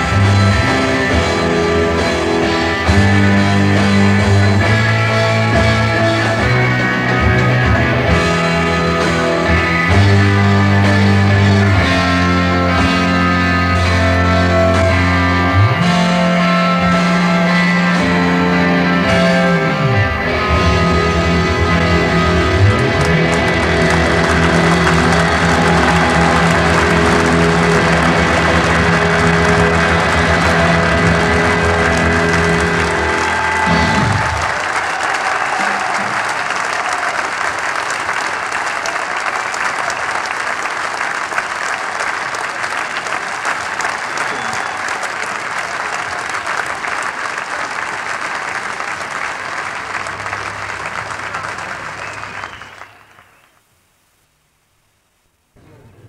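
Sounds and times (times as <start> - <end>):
rock band chord ringing out: 0.0 - 34.6
audience applauding: 20.2 - 53.7.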